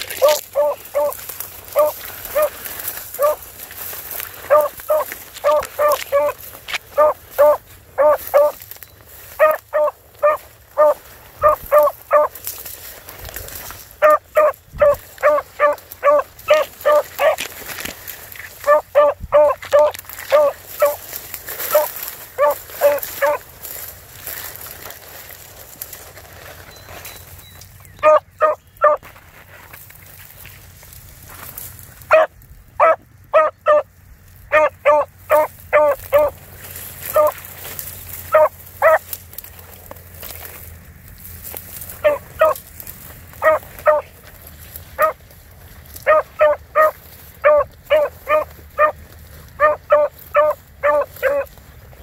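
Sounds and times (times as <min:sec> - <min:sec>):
dog barking in high yelps: 0:00.1 - 0:03.4, 0:04.4 - 0:08.6, 0:09.3 - 0:12.4, 0:14.0 - 0:17.4, 0:18.6 - 0:23.4, 0:28.0 - 0:29.0, 0:32.1 - 0:33.9, 0:34.5 - 0:36.4, 0:37.1 - 0:37.4, 0:38.2 - 0:39.1, 0:42.0 - 0:42.7, 0:43.3 - 0:44.2, 0:45.0 - 0:45.2, 0:46.0 - 0:49.0, 0:49.6 - 0:51.5.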